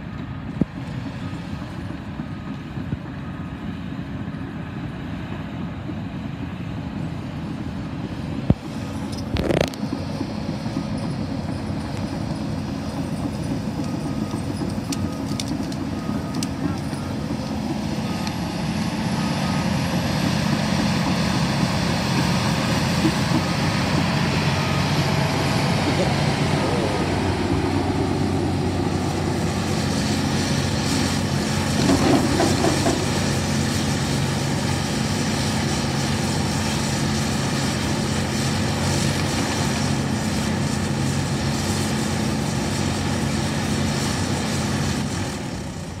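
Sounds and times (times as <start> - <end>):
diesel engine running: 0.0 - 46.0.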